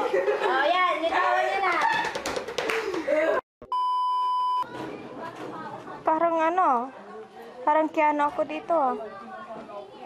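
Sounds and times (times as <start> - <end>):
people laughing: 0.0 - 0.8
electronic bleep tone: 3.7 - 4.7
chatter: 4.7 - 10.0.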